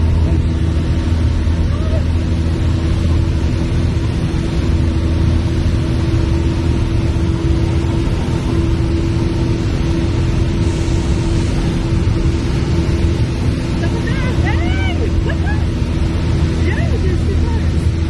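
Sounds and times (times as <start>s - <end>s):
airplane engine and propeller drone: 0.0s - 18.0s.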